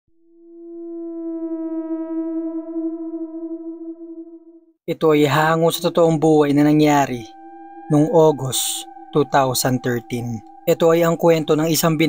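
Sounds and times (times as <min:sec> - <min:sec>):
sustained electronic tone: 0:00.2 - 0:12.0.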